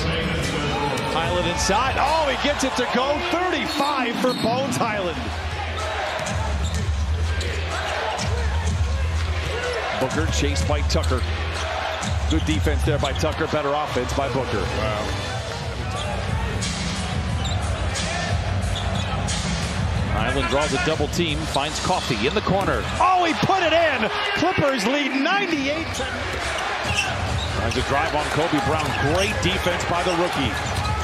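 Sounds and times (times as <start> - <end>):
arena crowd noise: 0.0 - 31.0.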